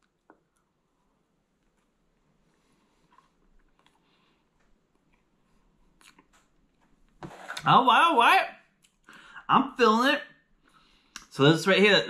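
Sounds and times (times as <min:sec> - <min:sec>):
mouth clicks of chewing: 0:06.0 - 0:06.4.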